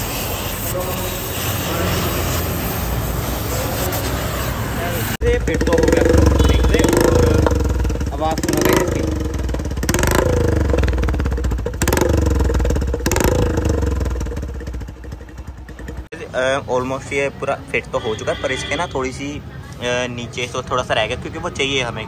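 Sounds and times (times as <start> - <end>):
motorcycle engine running: 1.3 - 16.2
voices in background: 16.1 - 22.0.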